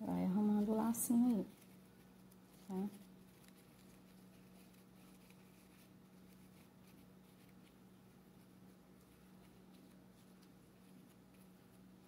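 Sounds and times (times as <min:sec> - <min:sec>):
faint low hum: 0:00.0 - 0:12.0
ribbon rustling and clicking: 0:00.5 - 0:12.0.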